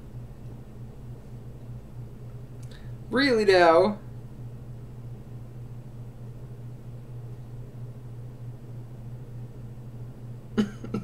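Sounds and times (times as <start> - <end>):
low steady hum: 0.0 - 11.0
man laughing: 10.6 - 11.0.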